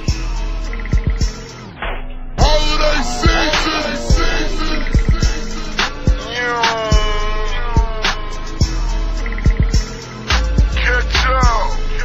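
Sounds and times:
long sliding synth note: 0:02.4 - 0:08.6.

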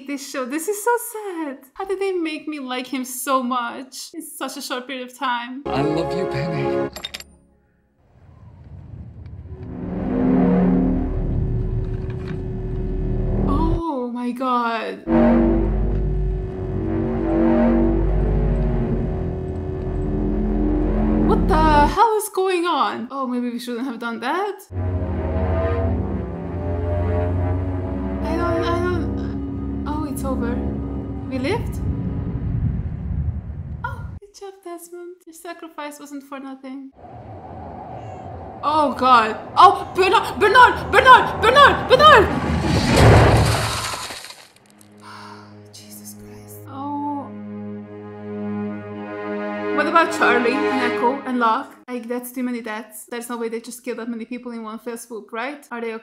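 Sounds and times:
loud deep rumble: 0:08.1 - 0:13.8, 0:15.0 - 0:22.0, 0:24.7 - 0:34.2, 0:37.0 - 0:43.8
sustained droning tones: 0:09.5 - 0:13.8, 0:15.1 - 0:21.9, 0:24.7 - 0:33.4
loud crash with low rumble: 0:31.3 - 0:34.2, 0:42.3 - 0:44.3.

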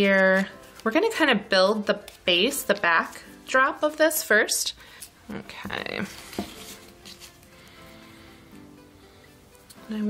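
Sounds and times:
rustling of greenery and paper: 0:00.0 - 0:07.8
soft background music: 0:00.0 - 0:10.0.

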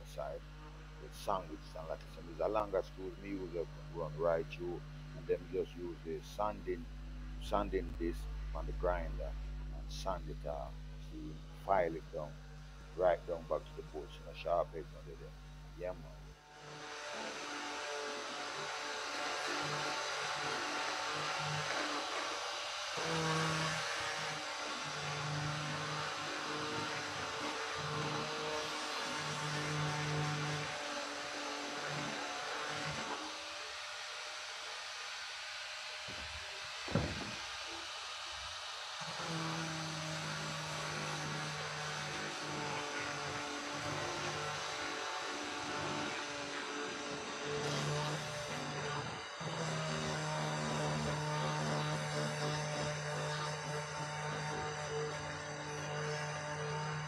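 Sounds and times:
angle grinder sanding wood: 0:00.0 - 0:57.0
single knock: 0:36.9 - 0:37.4.

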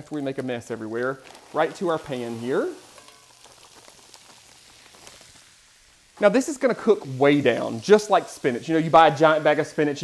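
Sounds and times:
greens sizzling in grease: 0:00.0 - 0:10.0.

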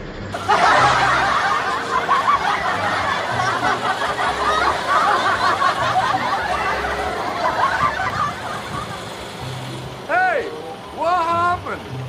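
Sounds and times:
people laughing and snickering: 0:00.4 - 0:09.7.

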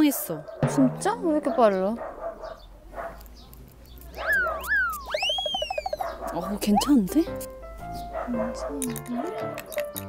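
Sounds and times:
cartoon whistle tones sliding: 0:04.2 - 0:06.0.

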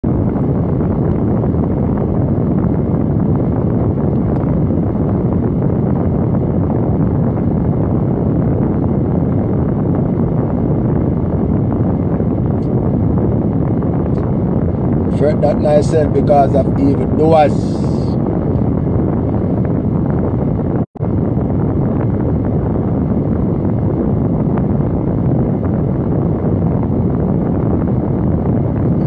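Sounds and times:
car cabin rumble: 0:00.1 - 0:22.6.

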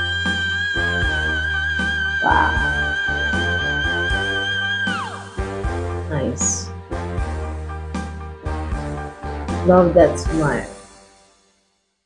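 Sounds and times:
man singing high note: 0:02.2 - 0:03.7.

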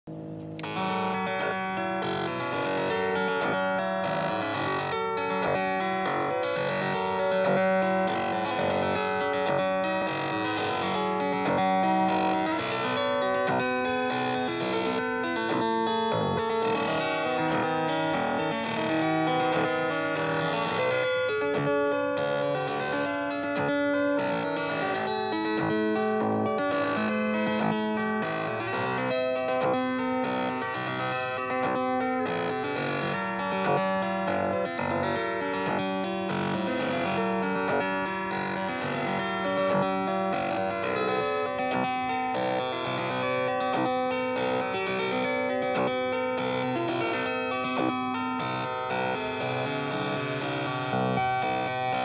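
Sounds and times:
synthesizer plucked notes sequence: 0:00.1 - 0:52.0.

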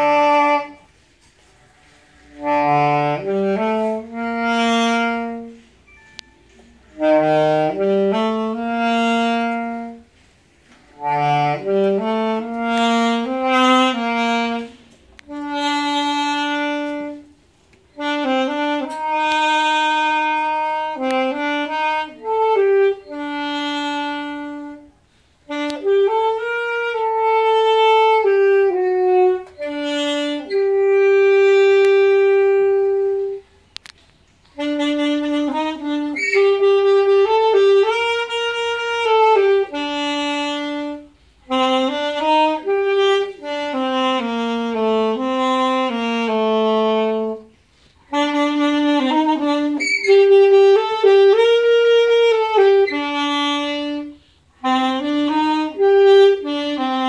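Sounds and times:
solo saxophone melody: 0:00.0 - 0:57.0.

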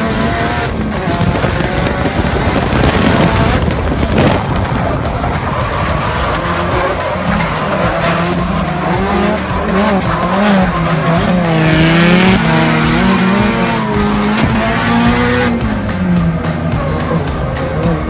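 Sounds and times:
car engine revving hard: 0:00.0 - 0:18.0
tyres squealing: 0:00.4 - 0:18.0.

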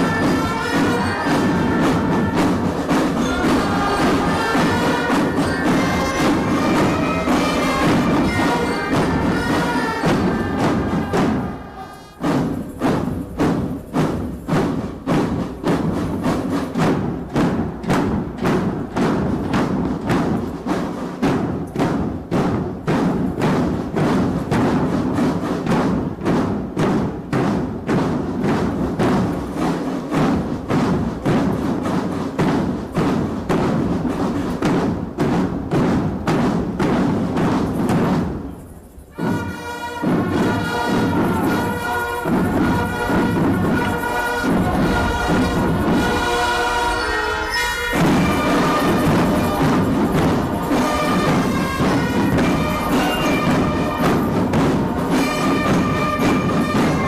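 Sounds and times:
marching drum band: 0:00.0 - 0:57.0.

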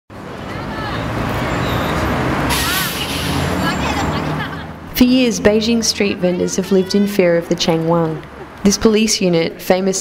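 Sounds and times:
traffic engine hum: 0:00.1 - 0:10.0
indistinct voices: 0:00.3 - 0:10.0.

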